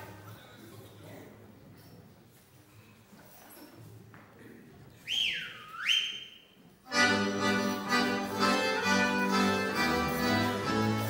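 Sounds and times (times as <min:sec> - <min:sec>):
swooping whistle: 0:05.1 - 0:06.6
folk band playing dance tune: 0:06.9 - 0:11.0.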